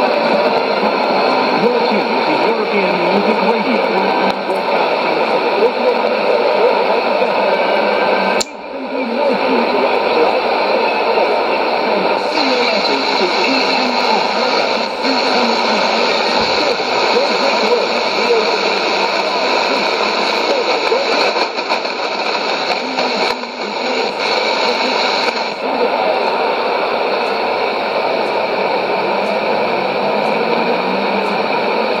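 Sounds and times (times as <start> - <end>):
voice over radio static: 0.0 - 32.0.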